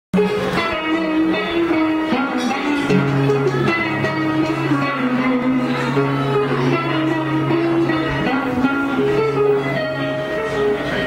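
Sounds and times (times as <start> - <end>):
drum kit: 0.1 - 11.0
electric guitar melody: 0.2 - 11.0.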